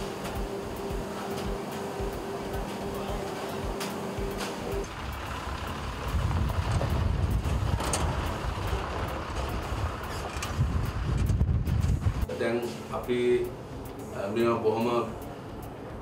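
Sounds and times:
machine hum: 0.0 - 16.0
diesel lorry engines rumbling: 0.4 - 16.0.

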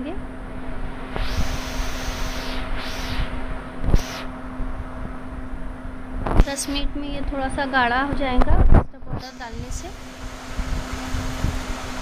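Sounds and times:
induction cooktop hum: 0.0 - 12.0.

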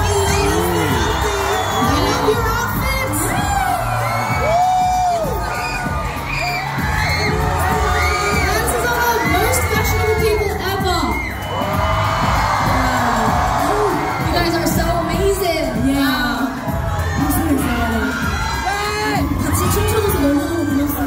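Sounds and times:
crowd cheering and screaming: 0.0 - 21.0
music playing: 0.0 - 21.0.

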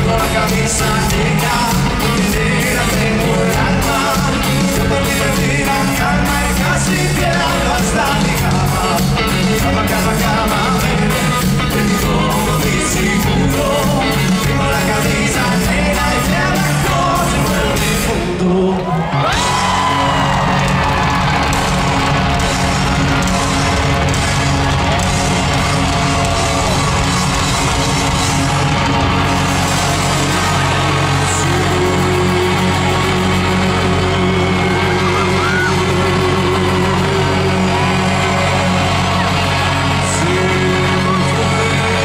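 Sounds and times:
person singing into microphone: 0.0 - 20.6, 30.0 - 42.0
crowd yelling: 0.0 - 42.0
rock band playing: 0.0 - 42.0.

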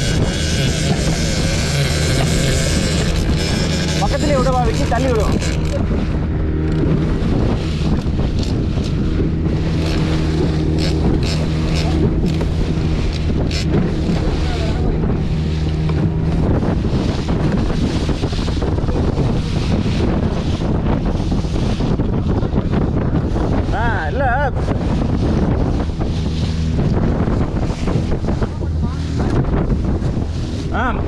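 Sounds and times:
boat engine drone: 0.0 - 31.0
water splashing along hull: 0.0 - 31.0
wind buffeting microphone: 0.0 - 31.0.

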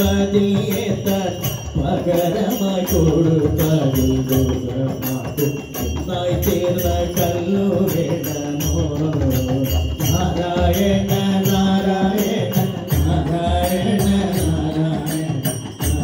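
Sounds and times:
devotional singing: 0.0 - 16.0
drum: 0.0 - 16.0
hand cymbals striking: 0.0 - 16.0.

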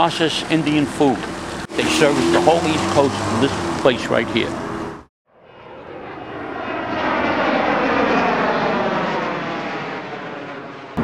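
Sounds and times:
airplane passing overhead: 0.0 - 11.0.

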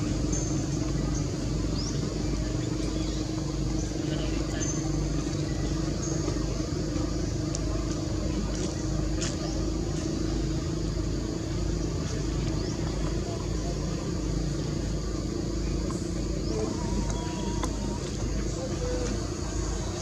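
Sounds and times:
engine-like hum and rumble: 0.0 - 20.0.

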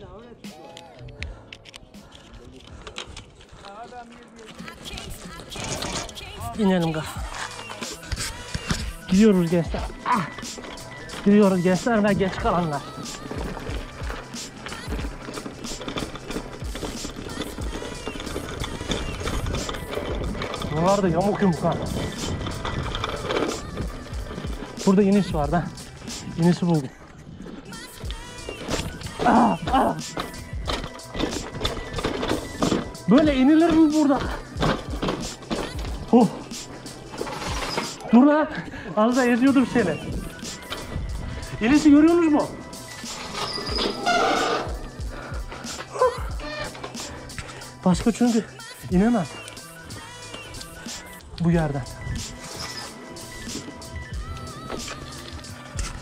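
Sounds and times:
music playing: 0.0 - 56.0
bike rattling over cobblestones: 2.4 - 56.0
man speaking: 11.2 - 12.9, 20.7 - 21.9, 24.8 - 27.0, 33.1 - 34.4, 38.1 - 40.2, 41.5 - 42.6, 47.8 - 49.4, 51.4 - 51.9.

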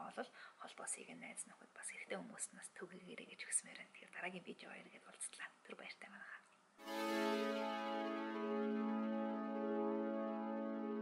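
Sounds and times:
woman talking softly: 0.0 - 6.5.

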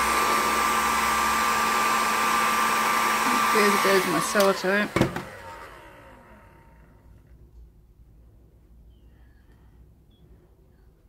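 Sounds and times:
heat gun fan winding down: 0.0 - 7.3.

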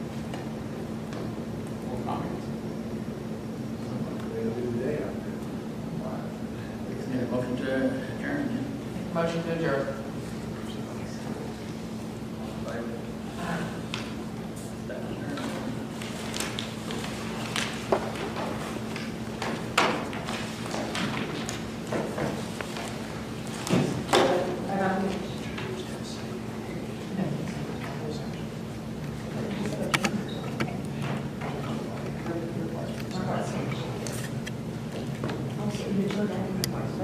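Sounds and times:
low ventilation hum: 0.0 - 37.0
papers being shuffled: 15.5 - 24.1.

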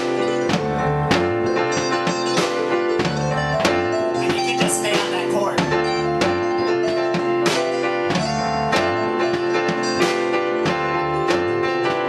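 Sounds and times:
live band playing: 0.0 - 12.0
sharp drum hits: 0.0 - 12.0.

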